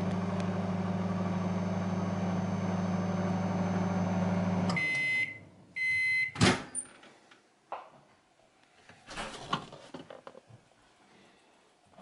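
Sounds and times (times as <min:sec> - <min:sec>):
microwave oven humming: 0:00.0 - 0:05.9
microwave beeps: 0:00.1 - 0:06.4.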